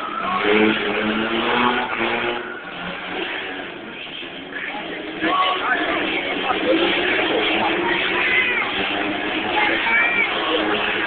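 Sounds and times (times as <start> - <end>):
car tyres squealing: 0.0 - 11.0
steady noisy din: 0.0 - 11.0.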